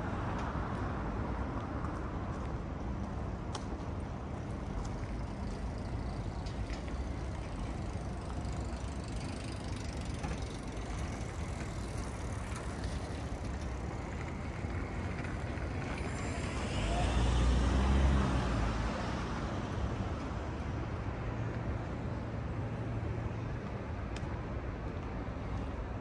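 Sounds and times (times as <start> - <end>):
city traffic hum: 0.0 - 26.0
vehicle passing close: 4.5 - 20.2.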